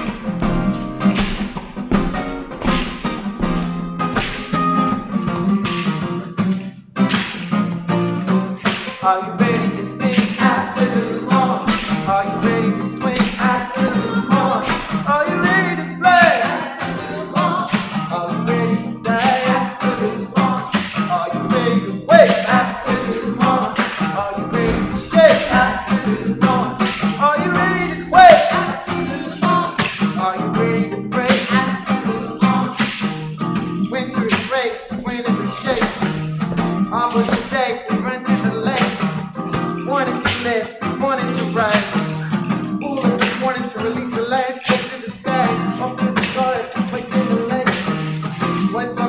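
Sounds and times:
acoustic guitar strumming: 0.0 - 49.0
voices singing: 8.3 - 33.0, 33.8 - 36.2.

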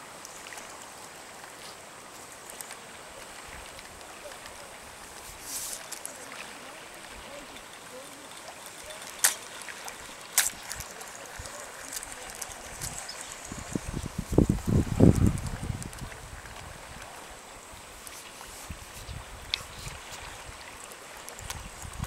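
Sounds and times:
flowing river hiss: 0.0 - 22.0.

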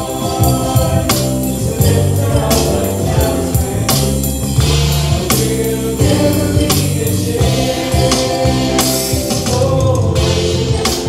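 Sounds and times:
choir singing with band: 0.0 - 11.0
electronic drums: 0.0 - 11.0.

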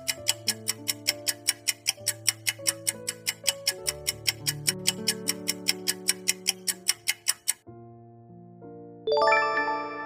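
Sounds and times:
countdown timer ticking: 0.0 - 7.6
soft background music: 0.0 - 10.0.

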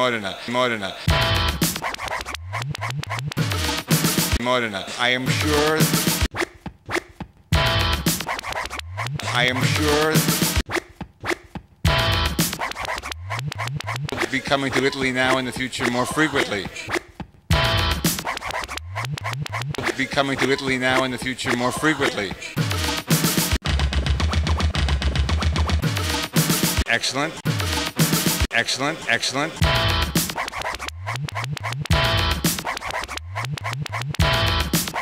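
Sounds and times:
electronic downtempo music: 29.6 - 35.0.

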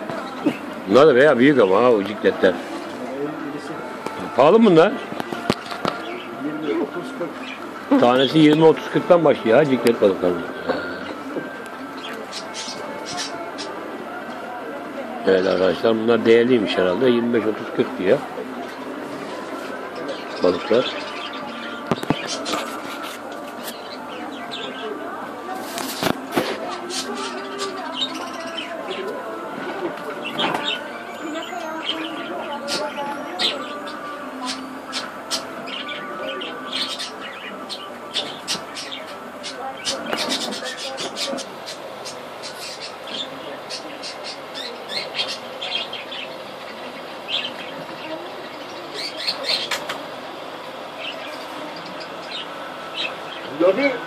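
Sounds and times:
birds chirping: 0.0 - 54.0
indistinct voices: 0.0 - 54.0.

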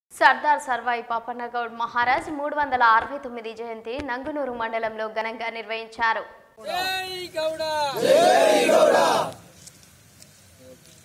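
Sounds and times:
men shouting together: 6.6 - 9.4.

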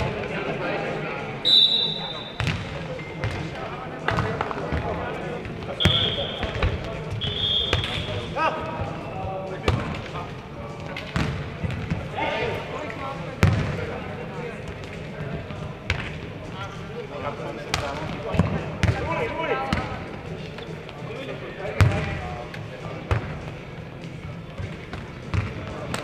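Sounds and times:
players calling out: 1.4 - 2.4
ball kicked and bouncing on court: 2.4 - 3.5, 24.6 - 26.0.

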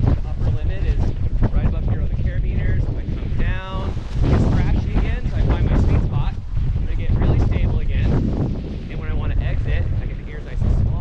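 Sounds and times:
person talking: 0.0 - 8.2, 8.9 - 11.0
wind buffeting microphone: 0.0 - 11.0.

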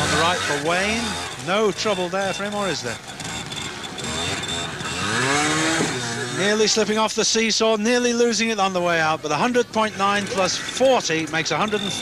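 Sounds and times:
motorcycle engine revving: 0.0 - 7.2, 8.4 - 12.0.

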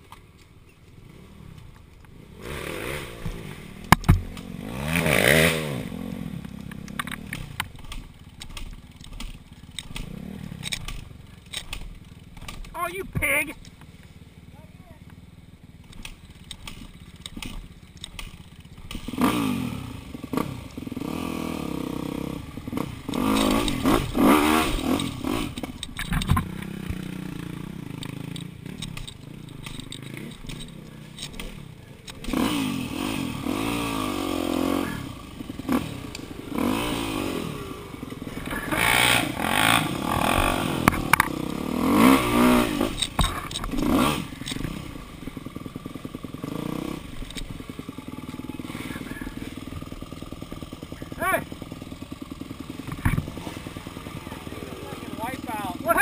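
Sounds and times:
dirt bike engine revving: 0.9 - 56.0.

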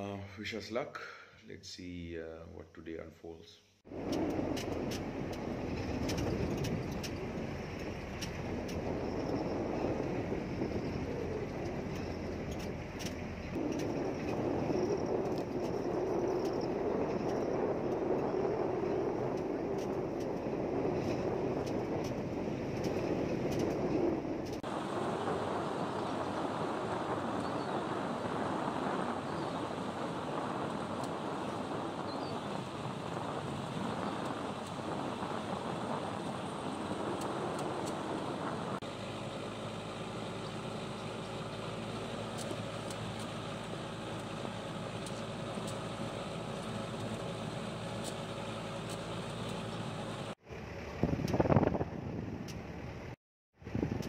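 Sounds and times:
jeep engine and tyre noise: 3.8 - 54.0.

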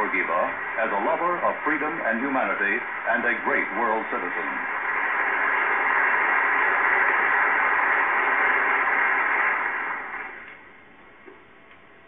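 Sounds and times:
audience applause: 0.0 - 10.5
faint film soundtrack hiss: 0.0 - 12.0.

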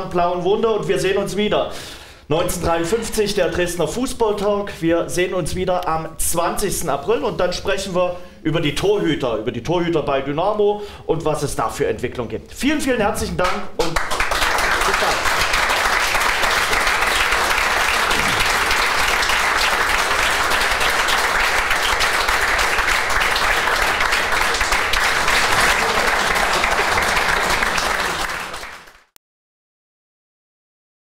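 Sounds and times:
audience applauding: 13.8 - 29.2.

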